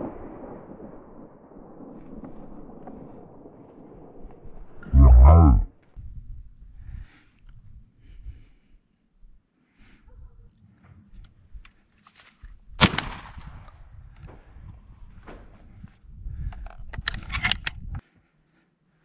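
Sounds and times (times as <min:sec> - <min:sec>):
wind rumble: 0:00.0 - 0:18.0
shotgun shot: 0:12.8 - 0:13.7.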